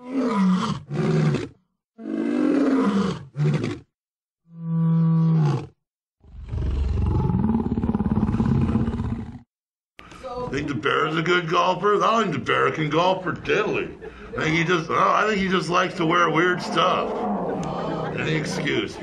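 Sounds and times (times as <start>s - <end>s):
person voicing growling roars: 6.3s - 9.4s, 16.0s - 19.0s
held vocal tone: 15.8s - 19.0s.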